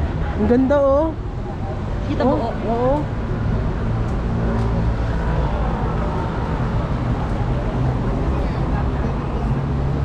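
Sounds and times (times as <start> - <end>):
city street rumble: 0.0 - 10.0.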